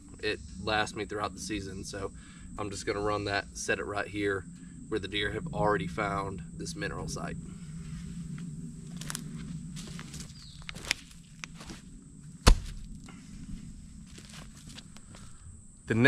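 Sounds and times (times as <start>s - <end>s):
footsteps on dry leaves: 7.8s - 15.4s
heavy thud on dirt: 12.4s - 13.0s.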